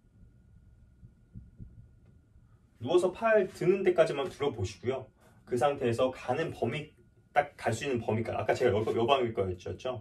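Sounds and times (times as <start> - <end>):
man speaking: 2.8 - 10.0.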